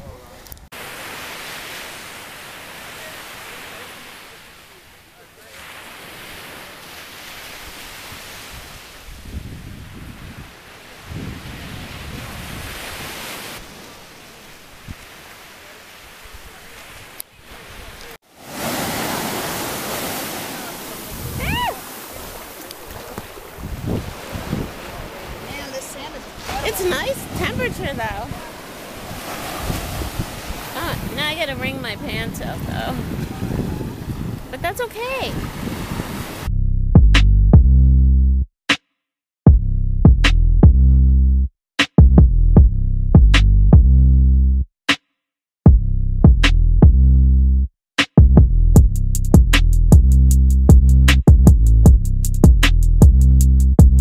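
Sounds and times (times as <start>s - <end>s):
surf breaking on beach: 0.0s - 36.5s
wind on microphone: 7.4s - 13.9s, 16.2s - 36.5s
person calling out: 21.3s - 21.9s.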